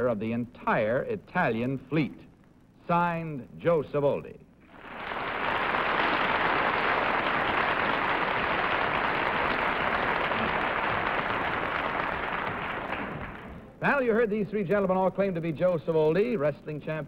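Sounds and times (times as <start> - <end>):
studio audience applauding: 4.7 - 13.6.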